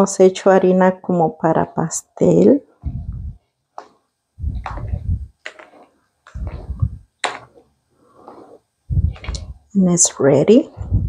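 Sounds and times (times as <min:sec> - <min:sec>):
hand kneading wet batter: 0:02.8 - 0:09.7.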